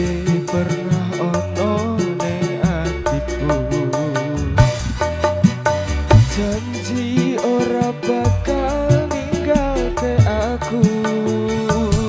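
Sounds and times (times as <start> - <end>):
bass line: 0.0 - 12.0
keyboard melody: 0.0 - 12.0
steady drum beat: 0.0 - 12.0.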